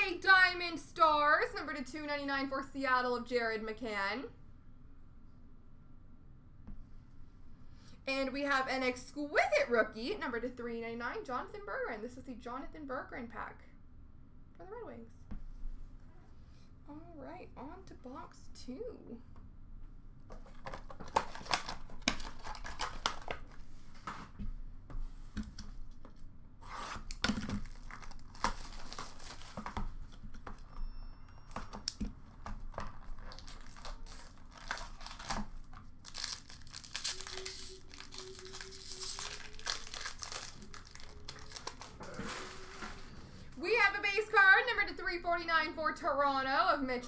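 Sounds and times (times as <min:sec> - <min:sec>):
cardboard box and foil packs clicking: 0:20.5 - 0:23.5, 0:27.1 - 0:30.6, 0:31.4 - 0:42.0
plastic shrink wrap tearing: 0:20.5 - 0:23.6, 0:27.0 - 0:30.2, 0:31.5 - 0:42.4.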